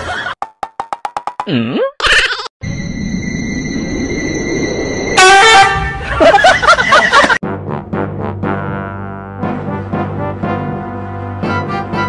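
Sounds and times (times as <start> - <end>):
loud horn-like honk: 5.2 - 6.0.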